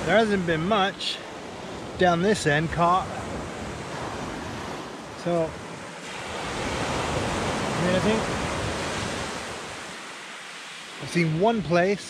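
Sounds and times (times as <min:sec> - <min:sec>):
surf washing on shingle beach: 0:00.0 - 0:12.0.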